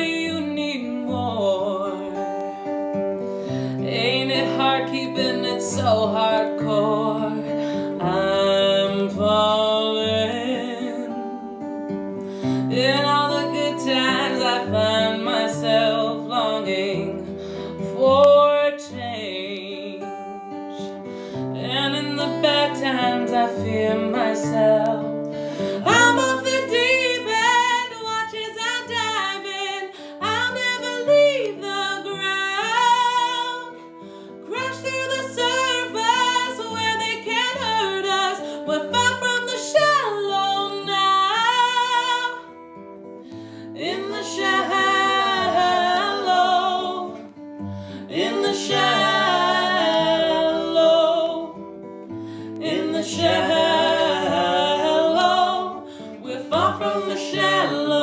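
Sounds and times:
woman singing: 0:00.0 - 0:02.7, 0:03.5 - 0:11.8, 0:12.4 - 0:42.8, 0:43.4 - 0:58.0
acoustic guitar: 0:00.0 - 0:58.0.

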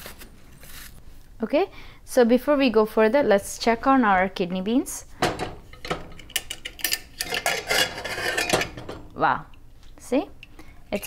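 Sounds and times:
pot and spoon clattering: 0:05.2 - 0:09.1.

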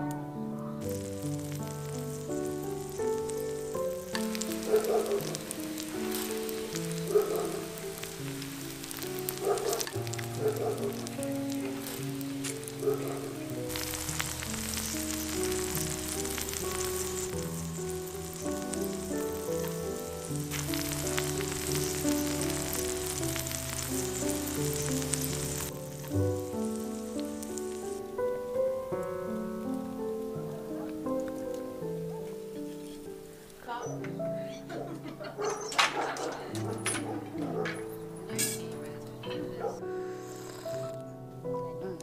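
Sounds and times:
food sizzling on hot stone: 0:00.0 - 0:42.0
instrumental background music: 0:00.0 - 0:42.0.

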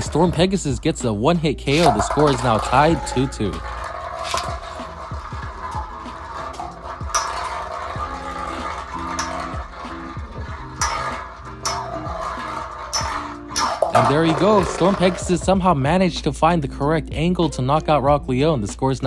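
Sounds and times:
spinning tops clacking: 0:00.0 - 0:15.8
spinning tops battling on metal: 0:00.0 - 0:17.7
background music: 0:00.0 - 0:19.0.

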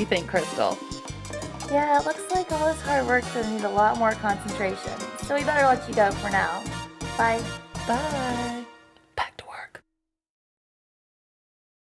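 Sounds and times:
person whispering: 0:09.1 - 0:09.8.

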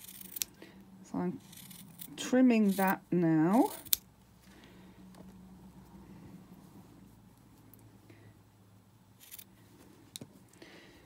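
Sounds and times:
scissors snipping fabric: 0:00.0 - 0:00.6, 0:01.4 - 0:04.1.

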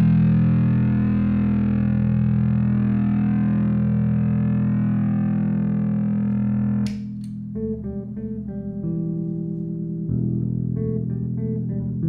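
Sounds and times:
distorted guitar chord ringing: 0:00.0 - 0:09.2.

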